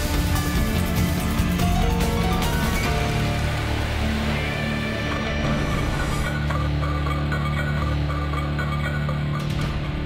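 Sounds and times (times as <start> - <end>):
electronic theme music: 0.0 - 10.0.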